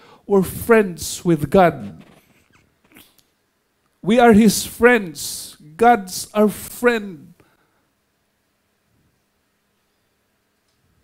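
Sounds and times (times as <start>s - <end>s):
faint short breaths: 0.0s - 0.3s.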